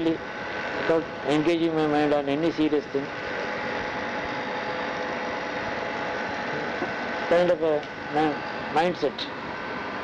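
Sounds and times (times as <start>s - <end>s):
faint humming tones: 0.0s - 10.0s.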